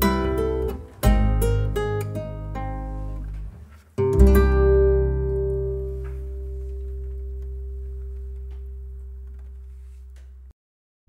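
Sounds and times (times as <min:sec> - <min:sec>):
acoustic guitar chord ringing: 0:00.0 - 0:03.4, 0:04.0 - 0:10.0.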